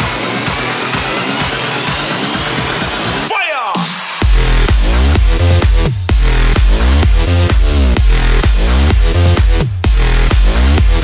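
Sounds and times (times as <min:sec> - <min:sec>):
electro house dance music: 0:00.0 - 0:11.0
steady kick drum: 0:00.0 - 0:11.0.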